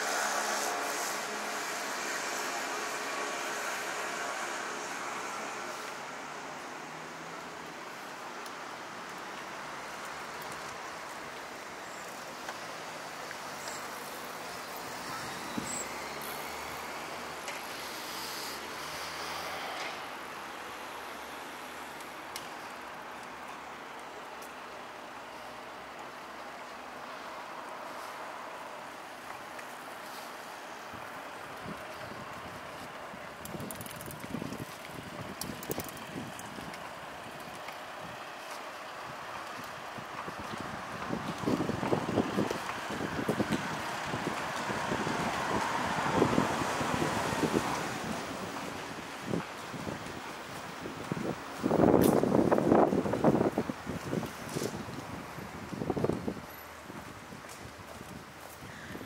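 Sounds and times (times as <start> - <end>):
traffic hum: 0.0 - 59.0
wind buffeting microphone: 30.9 - 38.4, 39.0 - 59.0.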